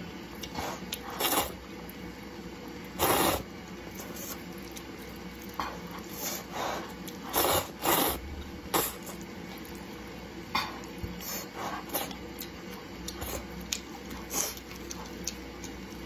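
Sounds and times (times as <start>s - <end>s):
slurping and chewing: 0.4s - 2.0s, 2.9s - 9.9s, 10.6s - 16.0s.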